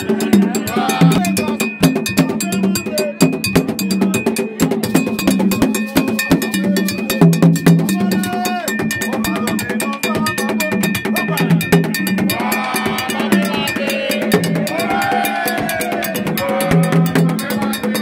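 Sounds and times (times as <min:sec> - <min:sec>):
hand drums beating fast: 0:00.0 - 0:18.0
voices singing: 0:00.0 - 0:18.0
metallic percussion clanking: 0:00.6 - 0:18.0.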